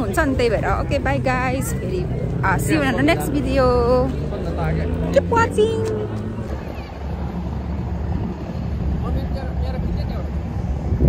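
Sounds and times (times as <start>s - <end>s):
faint voices: 0.0s - 10.9s
motorboat engine rumble: 3.4s - 11.0s
wind on microphone: 6.0s - 11.0s.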